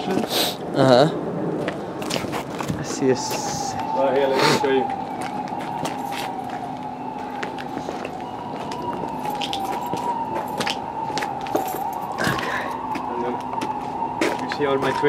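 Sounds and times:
high wavering whine: 2.8 - 15.0.

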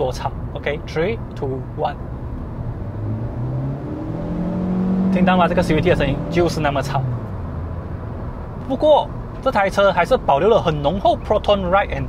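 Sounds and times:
car engine accelerating hard: 2.3 - 8.0.

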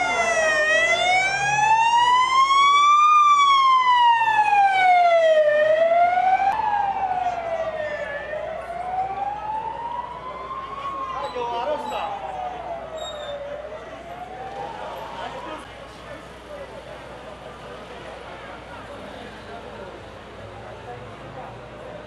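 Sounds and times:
electronic siren wailing: 0.0 - 15.6.

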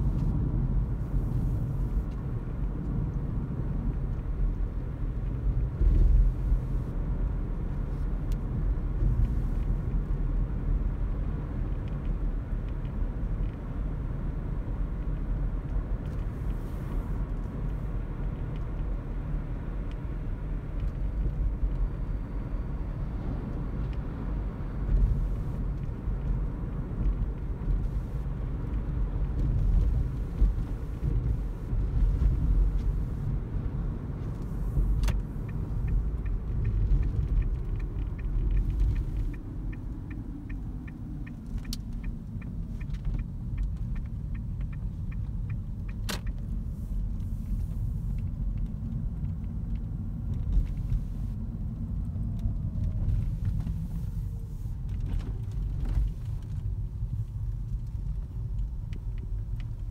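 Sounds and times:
car rumbling on road: 0.0 - 59.9.

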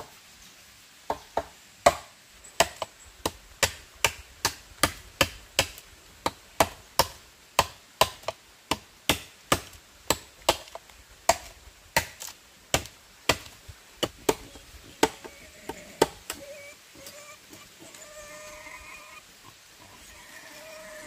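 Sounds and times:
machete chopping bamboo: 1.1 - 15.4.

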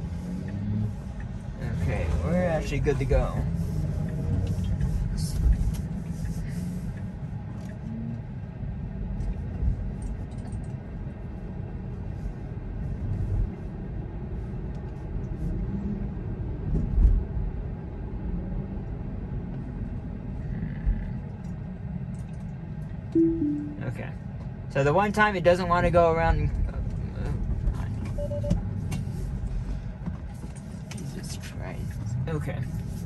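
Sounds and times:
road and tyre rumble in car: 0.0 - 23.2, 23.8 - 33.0.

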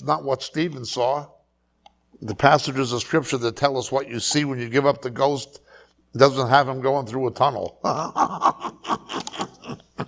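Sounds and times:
man laughing: 7.8 - 10.0.

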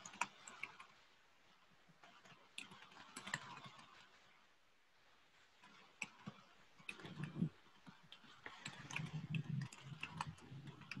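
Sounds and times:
faint irregular clicks: 0.0 - 11.0.

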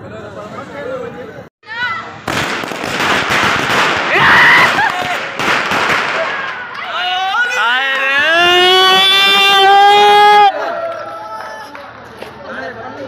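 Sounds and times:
firecrackers popping: 2.2 - 6.8.

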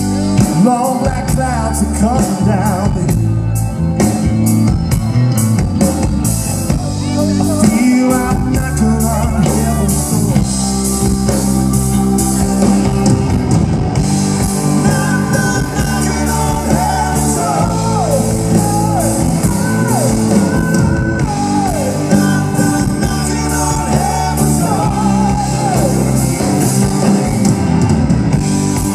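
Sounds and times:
man singing: 0.0 - 3.5, 6.7 - 13.1, 14.4 - 28.1
distorted electric guitar: 0.0 - 28.9.

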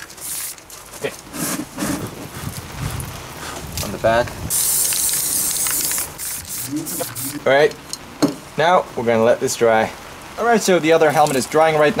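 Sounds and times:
wind buffeting microphone: 1.6 - 4.7.

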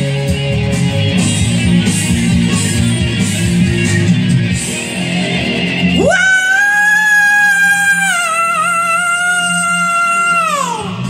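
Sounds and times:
hard rock music: 0.0 - 11.0.

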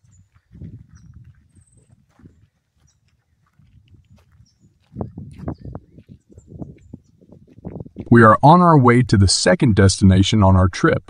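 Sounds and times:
footsteps on gravel: 0.0 - 8.4.

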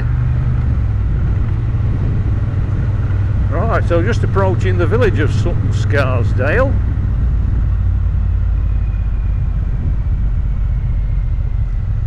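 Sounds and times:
motorcycle engine droning: 0.0 - 12.0.

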